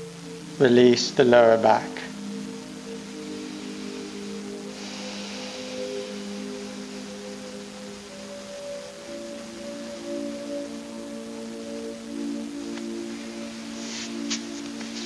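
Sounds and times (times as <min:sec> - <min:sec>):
ambient music of ringing tones: 0:00.0 - 0:15.0
faint hiss: 0:00.0 - 0:15.0.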